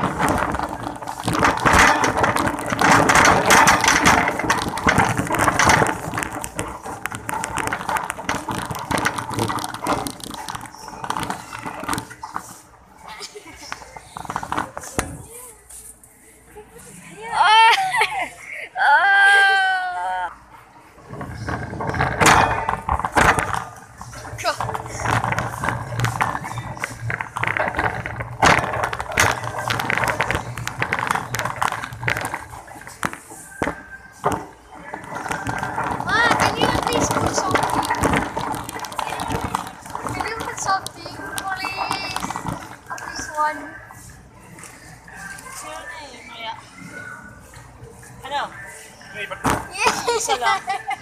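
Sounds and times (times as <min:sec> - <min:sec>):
cart basket rattling: 0:00.0 - 0:15.4, 0:21.0 - 0:43.8
shopping cart wheels rumbling: 0:00.0 - 0:15.8, 0:20.8 - 0:45.8
voices: 0:23.6 - 0:51.0.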